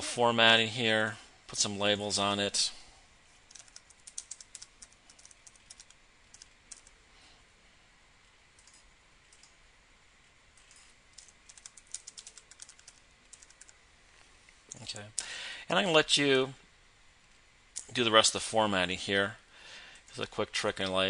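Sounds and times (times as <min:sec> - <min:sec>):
faint keyboard typing: 0:03.4 - 0:07.0, 0:08.5 - 0:09.6, 0:10.5 - 0:13.8.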